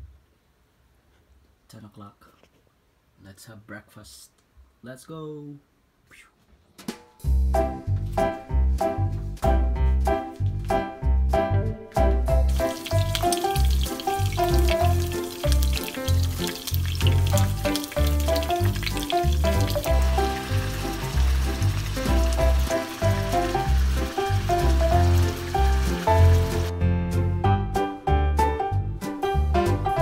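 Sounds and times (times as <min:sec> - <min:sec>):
background music with bass line: 0:07.2 - 0:30.0
meat sizzling in frying pan: 0:12.4 - 0:26.7.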